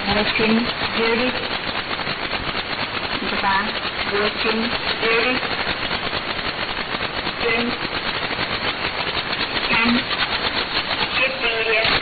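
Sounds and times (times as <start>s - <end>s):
faint woman's voice on radio: 0.0s - 1.4s, 3.2s - 5.5s, 7.4s - 7.8s, 9.6s - 10.1s, 11.2s - 12.0s
radio static hiss: 0.0s - 12.0s
rapid pulsing interference: 0.0s - 12.0s.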